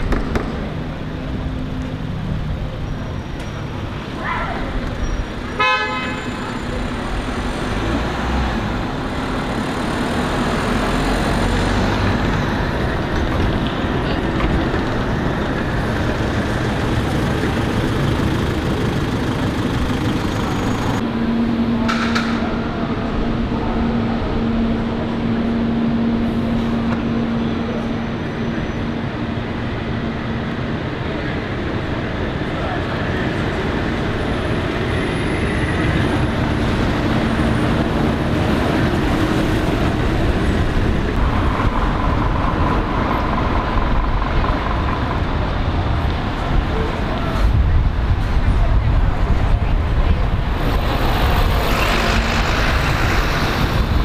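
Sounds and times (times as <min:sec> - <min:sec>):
buses and cars passing: 0:00.0 - 0:54.0
city street traffic: 0:00.0 - 0:54.0
vehicle horn toot: 0:05.6 - 0:06.5.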